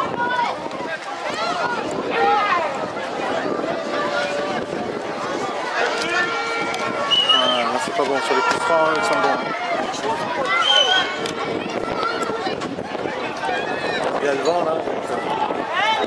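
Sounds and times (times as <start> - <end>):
crowd shouting and chatter: 0.0 - 16.0.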